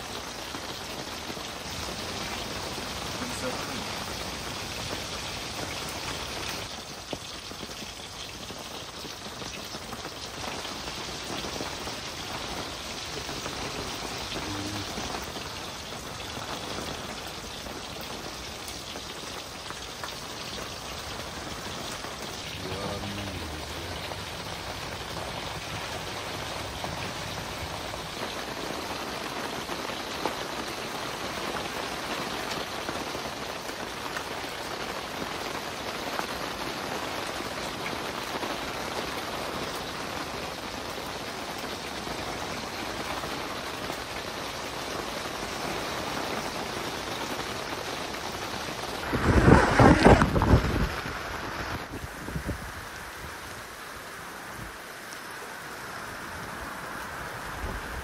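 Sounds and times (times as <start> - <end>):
heavy rain on tent fabric: 0.0 - 58.0.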